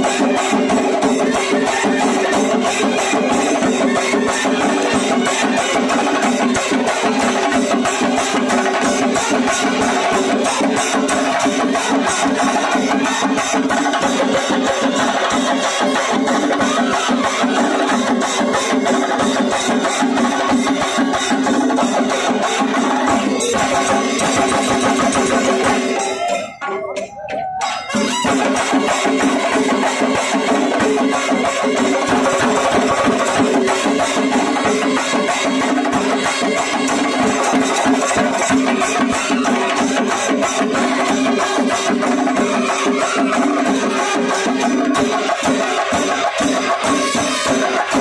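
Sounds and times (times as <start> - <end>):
drums beating driving rhythm: 0.0 - 48.0
brass band with trumpets: 46.6 - 48.0.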